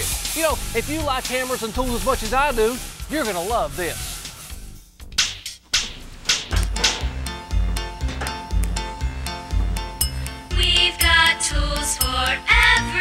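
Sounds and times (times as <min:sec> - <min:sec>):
upbeat children's music: 0:00.3 - 0:13.0.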